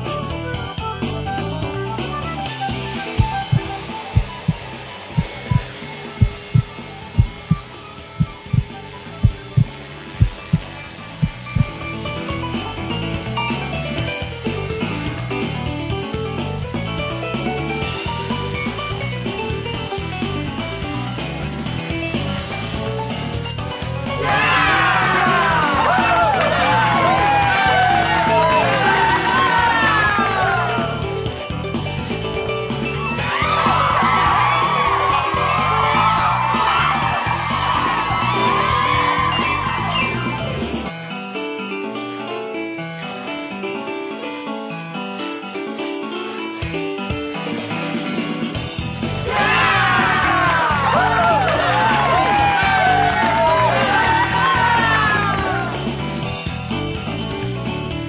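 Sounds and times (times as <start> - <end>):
background music with a beat: 0.0 - 7.6, 8.2 - 11.8
falling whistling tones: 35.9 - 40.7, 43.8 - 48.5.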